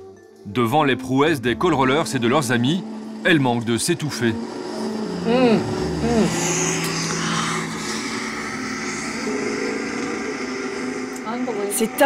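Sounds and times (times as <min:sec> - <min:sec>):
diesel truck engines droning: 0:00.5 - 0:12.0.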